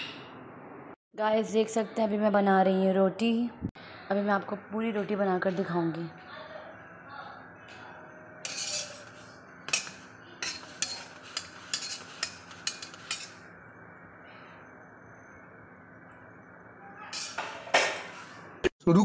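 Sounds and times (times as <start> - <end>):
metal spatula tapping griddle: 8.5 - 13.4.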